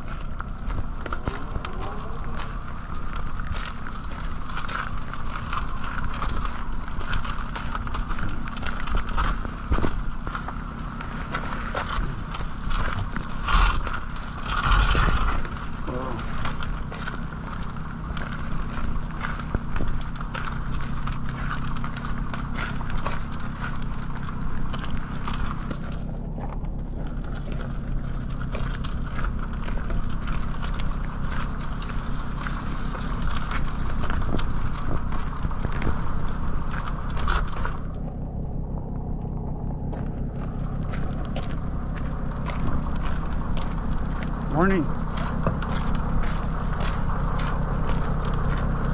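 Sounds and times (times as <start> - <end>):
footsteps on wet dirt: 0.0 - 48.9
machinery and traffic rumble: 0.0 - 48.9
rain on microphone: 0.0 - 48.9.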